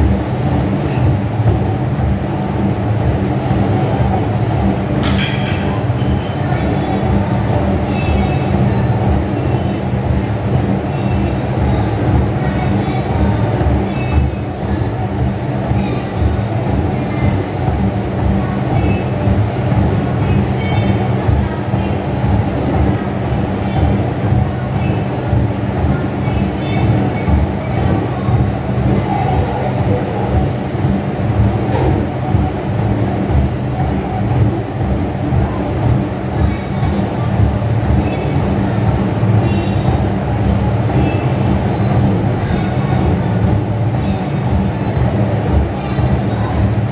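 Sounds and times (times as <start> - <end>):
exercise machine rumble: 0.0 - 46.9.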